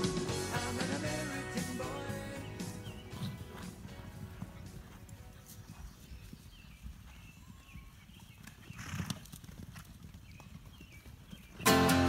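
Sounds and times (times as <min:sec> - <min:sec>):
horses galloping on grass: 0:00.0 - 0:11.7.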